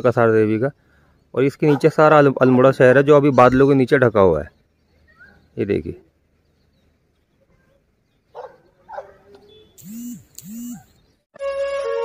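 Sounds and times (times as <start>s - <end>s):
animal calling: 7.6s - 11.0s.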